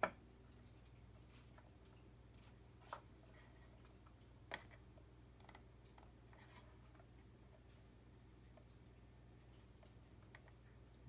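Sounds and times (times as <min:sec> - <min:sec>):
monitor electrical hum: 0:00.0 - 0:11.0.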